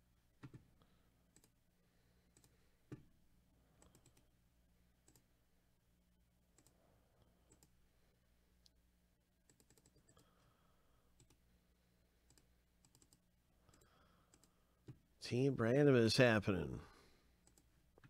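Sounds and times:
faint low hum: 0:00.0 - 0:18.0
computer mouse and keyboard clicks: 0:00.4 - 0:00.7, 0:02.3 - 0:03.1, 0:03.8 - 0:04.3, 0:05.0 - 0:05.3, 0:06.6 - 0:06.8, 0:07.5 - 0:07.8, 0:09.5 - 0:10.4, 0:11.2 - 0:11.4, 0:12.3 - 0:15.0, 0:17.4 - 0:18.0.

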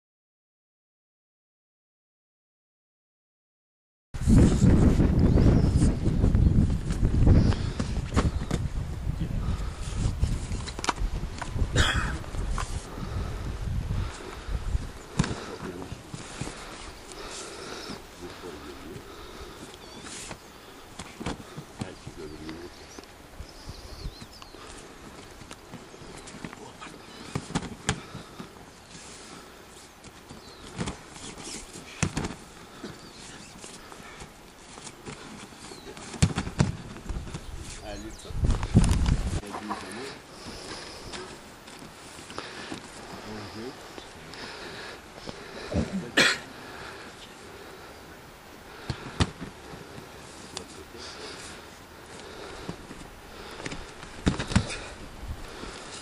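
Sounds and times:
wind rumbling on microphone: 0:04.2 - 0:20.0, 0:21.4 - 0:26.2, 0:35.7 - 0:39.5, 0:52.2 - 0:56.0
body thumping onto mat: 0:36.1 - 0:37.3, 0:53.6 - 0:54.8.

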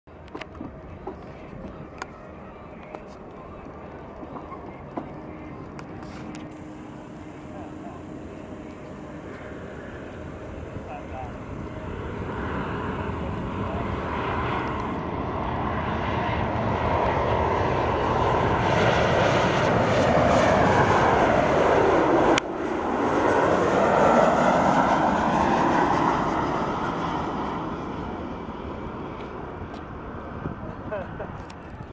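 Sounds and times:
jet airliner engine roar: 0:00.1 - 0:31.9.

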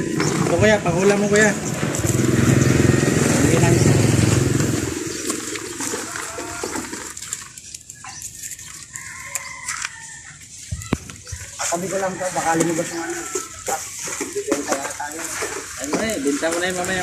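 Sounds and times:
passing vehicle engine: 0:00.0 - 0:05.8.

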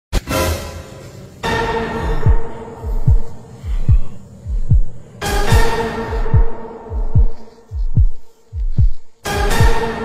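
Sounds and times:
heartbeat thumps: 0:02.0 - 0:10.0.

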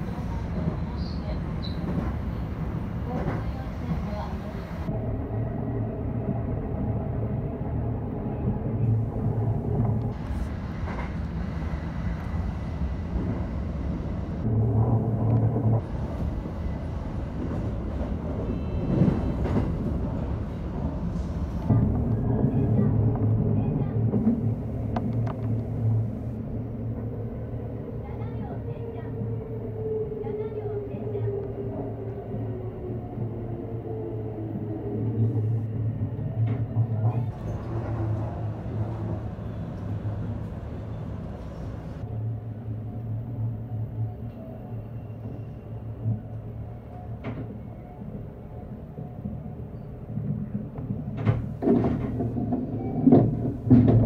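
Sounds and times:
train wheels rumbling on rail: 0:00.0 - 0:04.9, 0:08.0 - 0:29.4, 0:33.9 - 0:42.1, 0:45.2 - 0:54.0.

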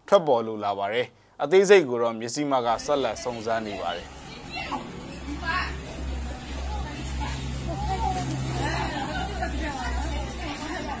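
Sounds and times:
distant voices calling out: 0:02.7 - 0:11.0
vehicle engine rumble: 0:04.0 - 0:11.0.

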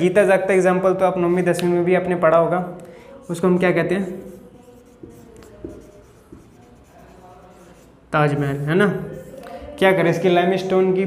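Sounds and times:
marker writing on whiteboard: 0:03.2 - 0:09.4.

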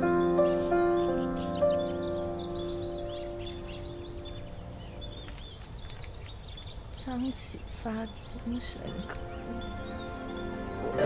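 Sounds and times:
slow piano notes: 0:00.0 - 0:05.3, 0:08.6 - 0:11.0
bird chirping: 0:00.0 - 0:11.0
faint bird twittering: 0:00.0 - 0:11.0.

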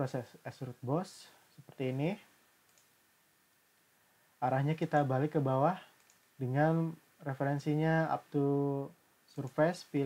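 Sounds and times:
computer mouse click: 0:02.6 - 0:03.0, 0:05.9 - 0:06.3.

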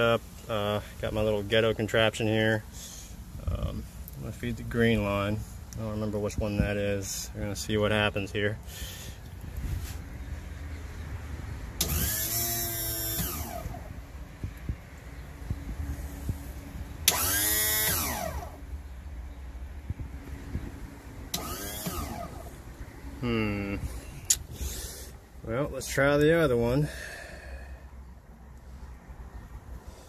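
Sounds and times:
electric pump motor whining: 0:11.8 - 0:14.0, 0:17.0 - 0:18.7, 0:21.3 - 0:23.4.

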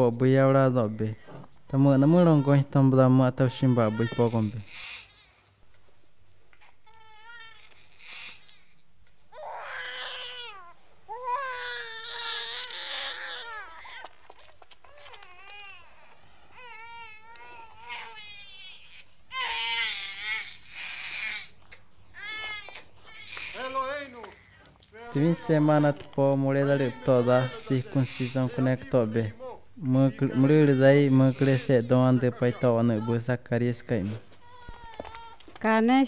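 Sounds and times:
newborn baby crying: 0:02.0 - 0:05.5, 0:06.6 - 0:33.4, 0:34.4 - 0:35.6.

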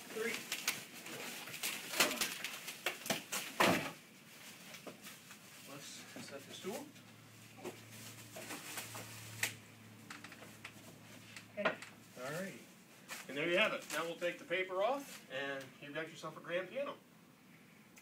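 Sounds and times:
plastic wrapping rustling: 0:00.0 - 0:11.4, 0:12.0 - 0:15.3.

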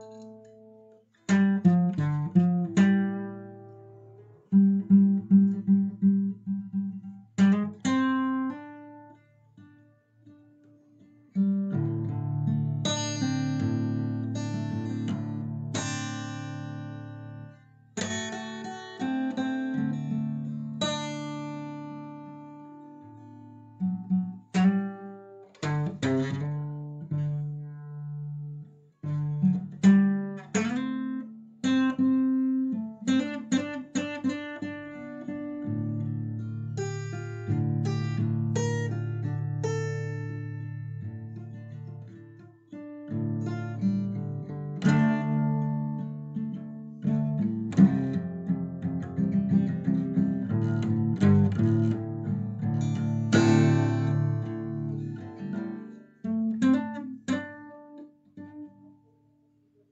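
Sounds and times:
plucked acoustic guitar music: 0:00.0 - 0:59.5.

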